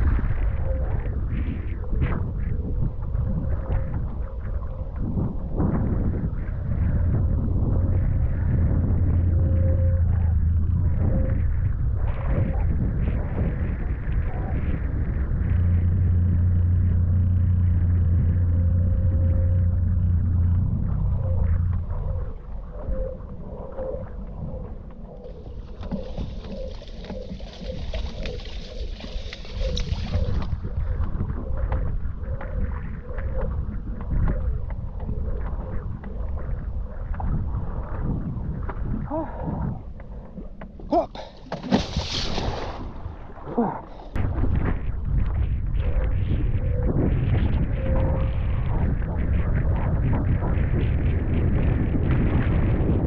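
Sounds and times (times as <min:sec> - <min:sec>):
steady low hum: 0:00.0 - 0:53.0
wind noise on microphone: 0:00.0 - 0:53.0.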